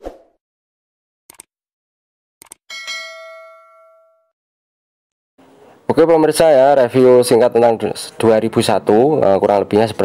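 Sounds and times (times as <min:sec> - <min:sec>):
bright bell-like ding: 0:02.7 - 0:04.4.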